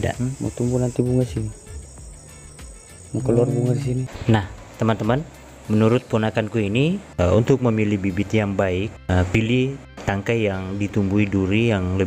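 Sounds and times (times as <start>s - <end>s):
crickets chirping: 0.0s - 7.2s.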